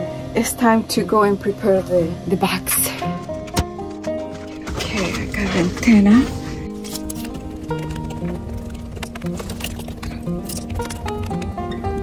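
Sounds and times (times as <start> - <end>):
background music with tapping beat: 2.8 - 12.0.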